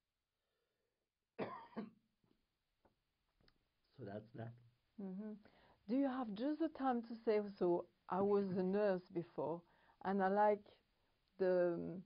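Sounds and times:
person coughing: 1.4s - 2.0s.

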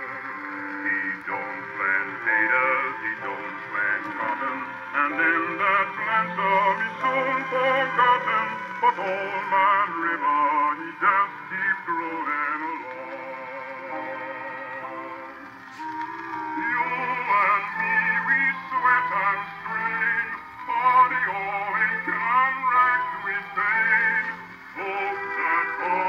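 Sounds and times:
male singer with vibrato: 0.0s - 26.0s
orchestra playing: 0.0s - 26.0s.

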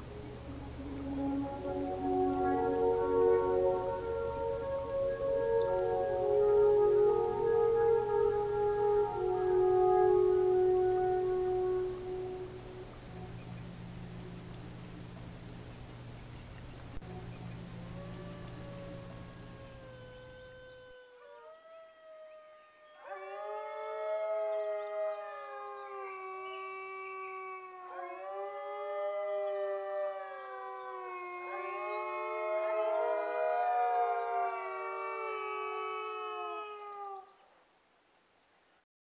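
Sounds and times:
alphorn playing slow melody: 0.0s - 20.9s.

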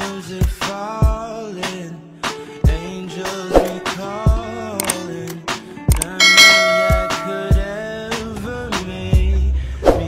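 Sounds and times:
background music with a beat: 0.0s - 9.4s
bright bell chime: 6.1s - 7.7s.

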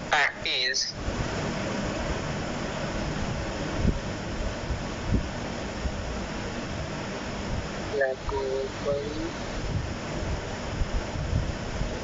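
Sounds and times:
microphone hiss and rumble: 0.0s - 12.0s.

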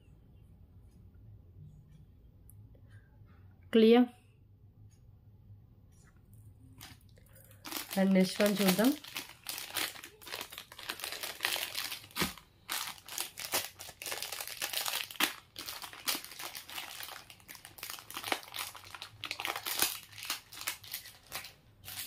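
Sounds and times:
plastic packaging crinkling: 6.8s - 22.0s.

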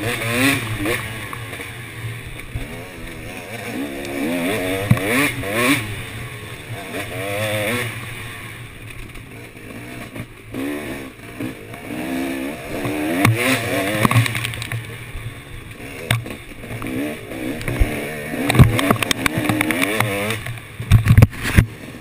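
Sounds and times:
dirt bike engine revving: 0.0s - 22.0s
bike knocks and clatter: 12.8s - 14.9s, 17.6s - 21.8s.

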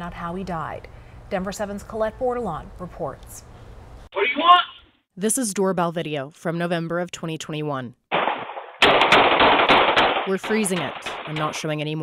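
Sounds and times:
distorted gunshots: 8.1s - 11.8s.

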